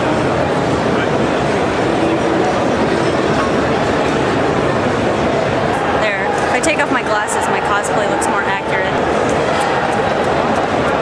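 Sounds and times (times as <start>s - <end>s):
crowd voices din: 0.0s - 11.0s.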